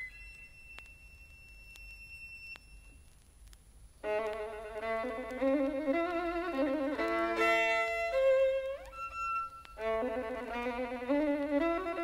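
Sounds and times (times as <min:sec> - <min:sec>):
vinyl crackle: 0:00.0 - 0:12.0.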